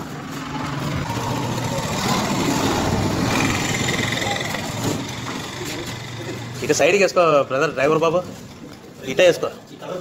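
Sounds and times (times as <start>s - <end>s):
small vehicle engine running: 0.0s - 7.7s.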